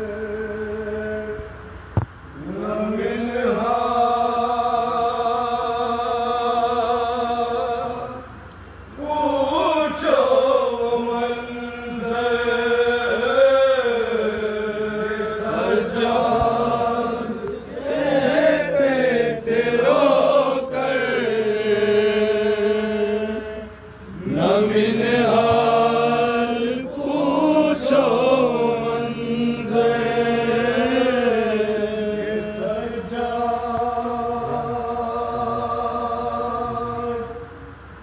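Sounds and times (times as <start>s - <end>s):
men chanting a lament: 2.4s - 37.8s.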